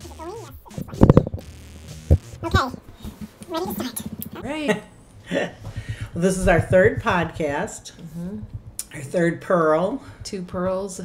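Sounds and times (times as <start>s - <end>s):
woman speaking: 0.0s - 1.4s, 2.4s - 11.0s.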